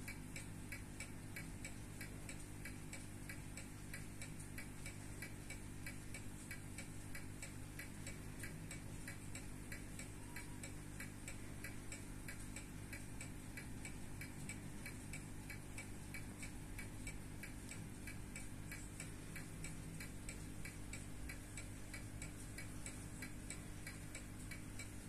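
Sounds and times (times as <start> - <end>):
faint steady hum: 0.0 - 25.0
wristwatch ticking: 0.1 - 25.0.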